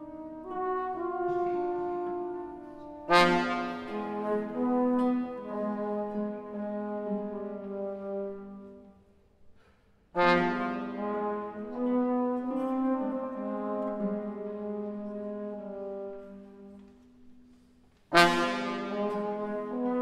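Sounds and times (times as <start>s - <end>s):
trombone flute and guitar chamber music: 0.0s - 8.8s, 10.2s - 16.9s, 18.1s - 20.0s.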